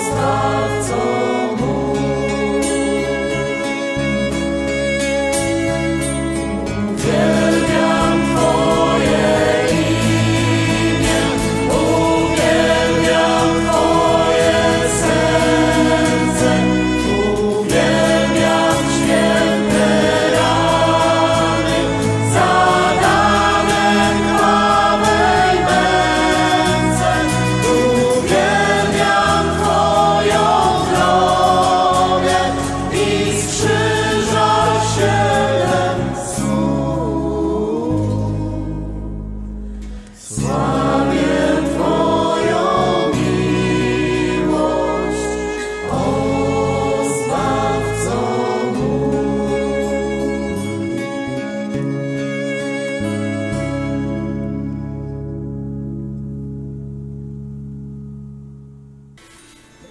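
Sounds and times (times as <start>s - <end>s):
choir singing worship song: 0.0s - 5.7s, 6.7s - 54.0s
steady bass line: 0.0s - 52.5s, 53.1s - 59.4s.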